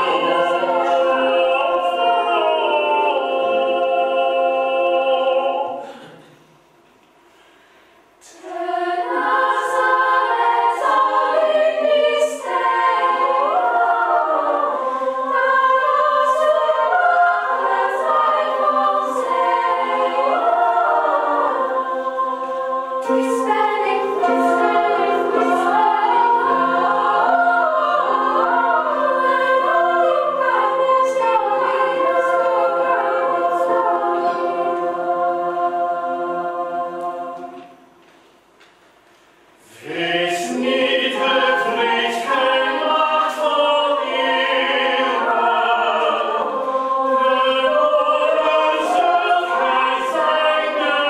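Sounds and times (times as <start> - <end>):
choir of girls singing: 0.0 - 6.1, 8.2 - 38.1, 39.6 - 51.0.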